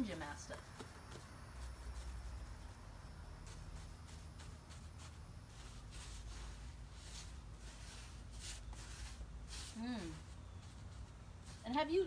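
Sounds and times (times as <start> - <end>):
paintbrush scratchy swishes: 3.4 - 12.0.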